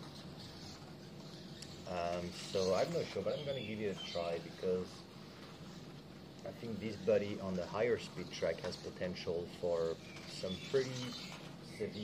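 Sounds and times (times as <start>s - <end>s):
electric toy car driving on carpet: 0.0s - 12.0s
low steady hum: 0.0s - 12.0s.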